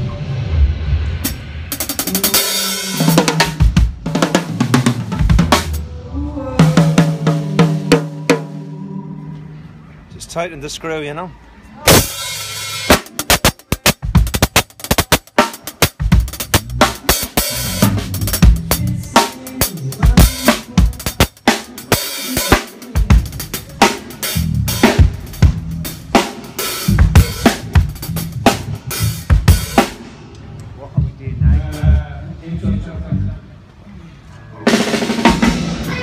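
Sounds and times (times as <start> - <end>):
drum kit playing: 0.0 - 5.9, 6.6 - 8.8, 11.9 - 30.3, 34.6 - 36.0.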